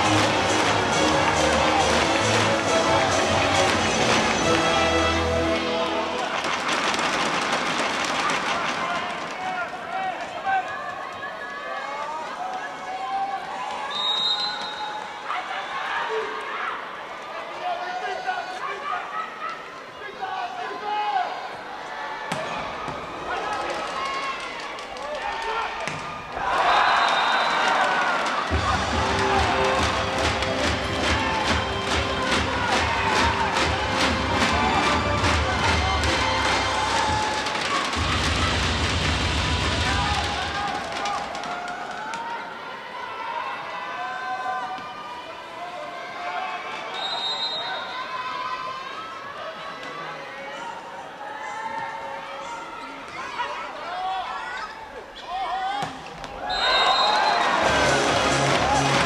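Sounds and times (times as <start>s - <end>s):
crowd clapping rhythmically: 0.0s - 5.0s, 27.6s - 41.6s, 57.5s - 59.0s
music: 0.0s - 6.7s, 28.5s - 40.5s, 57.4s - 59.0s.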